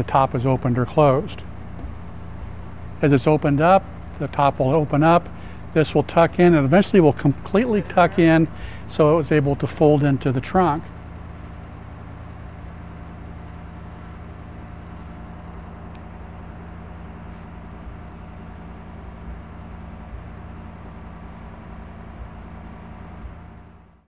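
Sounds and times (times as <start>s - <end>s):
convertible roof mechanism humming: 0.0s - 24.0s.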